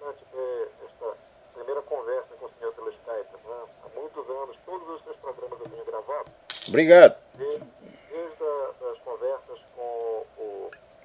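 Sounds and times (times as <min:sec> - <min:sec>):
person talking over telephone: 0:00.0 - 0:10.8.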